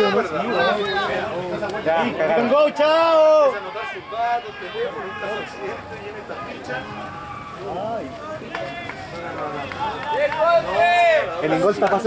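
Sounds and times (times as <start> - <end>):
people shouting: 0.0 - 11.7
spectators talking and calling out: 0.0 - 12.0.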